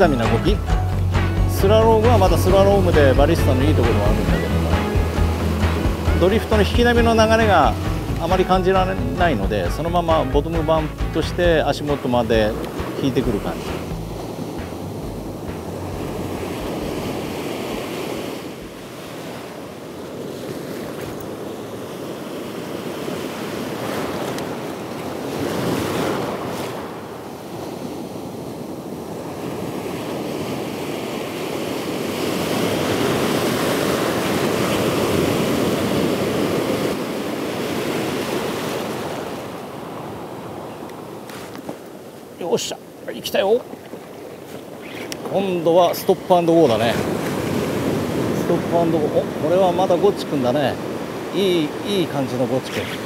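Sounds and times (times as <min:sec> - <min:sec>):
surf breaking on a beach: 0:01.5 - 0:53.0.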